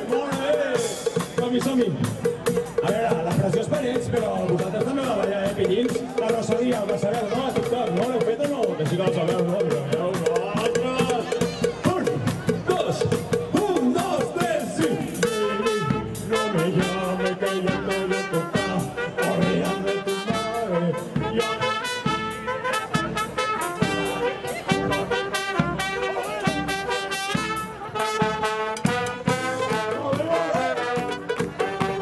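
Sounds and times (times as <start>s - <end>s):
brass street band playing: 0.0s - 32.0s.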